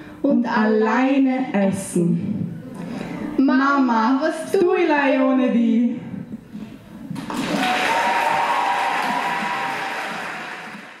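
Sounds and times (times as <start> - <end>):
audience applauding: 7.2 - 11.0.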